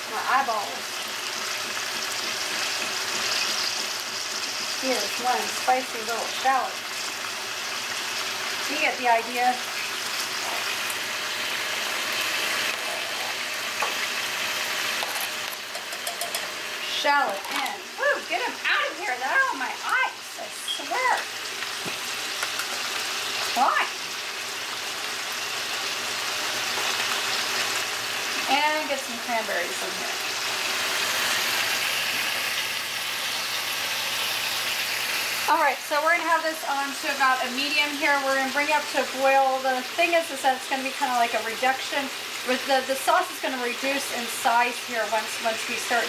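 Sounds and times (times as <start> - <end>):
steaks sizzling: 0.0 - 46.0.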